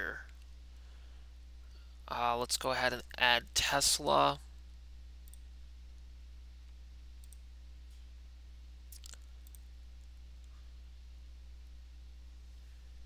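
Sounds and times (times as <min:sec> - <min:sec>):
steady low hum: 0:00.0 - 0:13.0
computer mouse clicks: 0:05.2 - 0:05.5, 0:07.2 - 0:07.5, 0:08.9 - 0:09.7.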